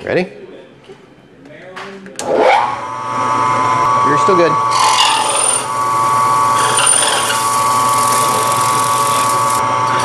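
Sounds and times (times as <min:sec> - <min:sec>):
drill bit cutting metal: 0:04.3 - 0:10.0.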